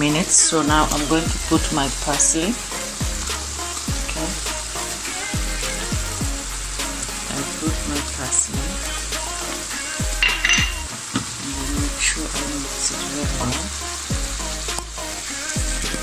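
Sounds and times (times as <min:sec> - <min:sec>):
mushrooms sizzling in frying pan: 0:00.0 - 0:16.0.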